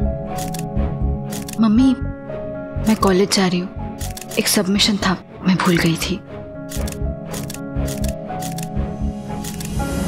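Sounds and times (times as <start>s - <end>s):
woman speaking: 1.6s - 2.0s, 2.8s - 6.2s.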